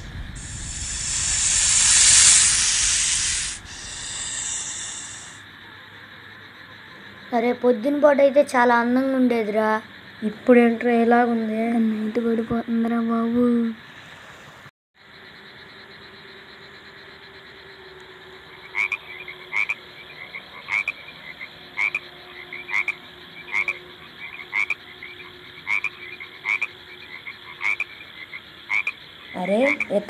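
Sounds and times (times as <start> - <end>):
faint steady hiss: 0.0 - 5.8
frogs croaking: 0.1 - 14.1, 15.0 - 30.0.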